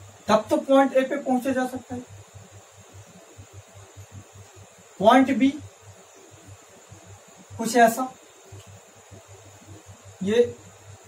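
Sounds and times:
faint steady hiss: 0:00.0 - 0:11.0
pulsing electrical hum: 0:00.0 - 0:11.0.

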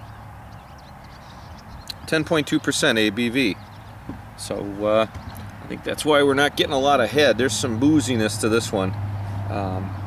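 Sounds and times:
bird chirps: 0:00.0 - 0:05.8.

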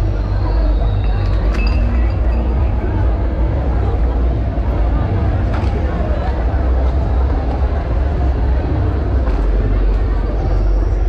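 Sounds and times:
crowd chatter: 0:00.0 - 0:11.0
deep rumble: 0:00.0 - 0:11.0.

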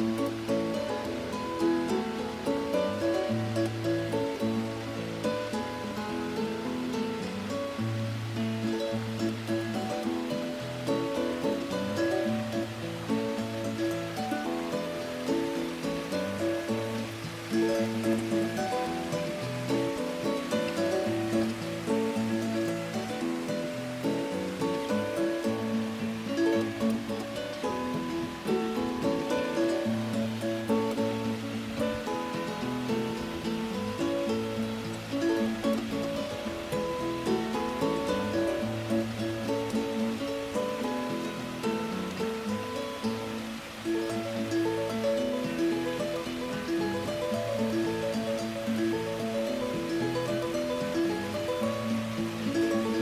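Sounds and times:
acoustic guitar music: 0:00.0 - 0:53.0.

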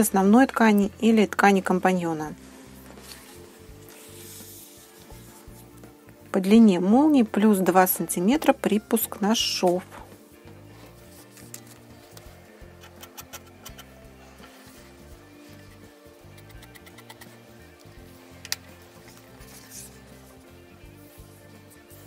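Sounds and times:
quiet background music: 0:00.0 - 0:22.0.

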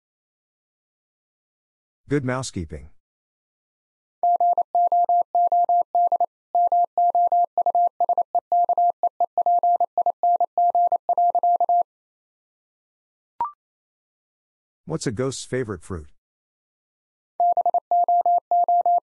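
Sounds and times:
morse code tone: 0:04.2 - 0:11.8, 0:17.4 - 0:19.0.

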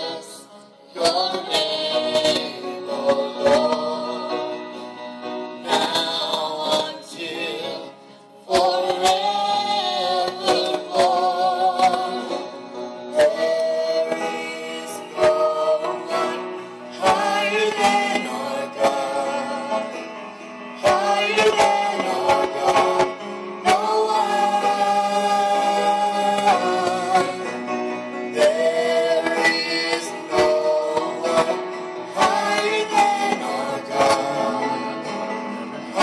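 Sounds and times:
gospel choir singing: 0:00.0 - 0:36.0
instrumental accompaniment: 0:00.0 - 0:36.0.

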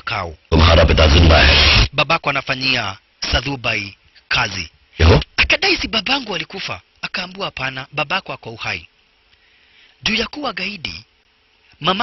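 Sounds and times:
person speaking: 0:00.0 - 0:08.9, 0:10.0 - 0:11.1, 0:11.7 - 0:12.0
faint hum with hiss: 0:00.0 - 0:12.0.

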